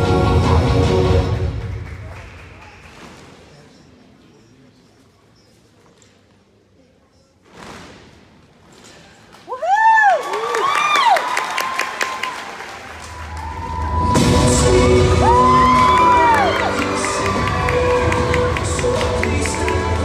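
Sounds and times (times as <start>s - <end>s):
recorded show music with deep bass: 0.0s - 2.2s, 13.4s - 20.0s
audience whooping and cheering: 9.5s - 20.0s.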